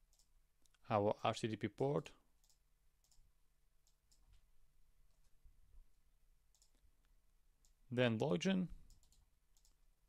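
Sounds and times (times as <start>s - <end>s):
faint computer mouse clicks: 6.5s - 7.8s, 8.8s - 9.8s.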